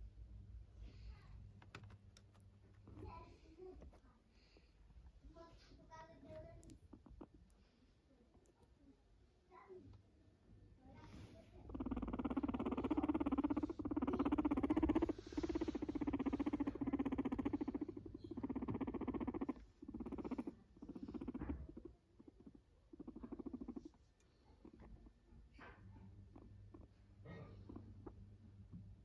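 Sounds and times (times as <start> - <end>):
guinea pig purring: 0.8 - 29.0.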